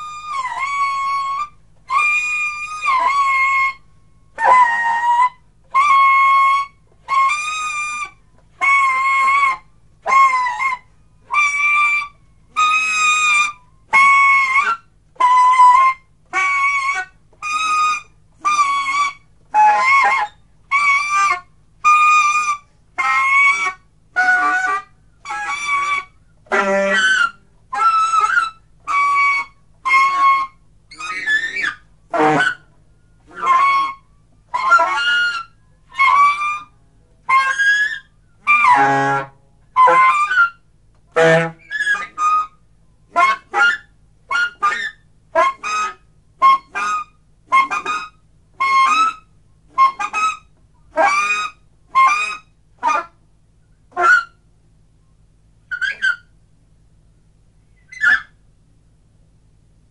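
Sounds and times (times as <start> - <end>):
saxophone improvisation: 0.0 - 54.8, 55.6 - 56.4, 57.7 - 58.4.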